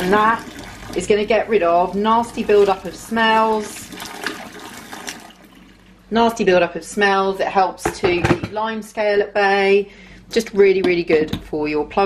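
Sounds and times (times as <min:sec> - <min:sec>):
water running down plug hole: 0:00.0 - 0:06.0
water splashing into steel sink: 0:00.0 - 0:06.0.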